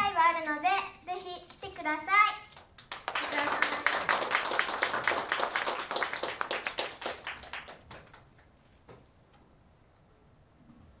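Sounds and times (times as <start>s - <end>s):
small group clapping: 2.5s - 8.5s.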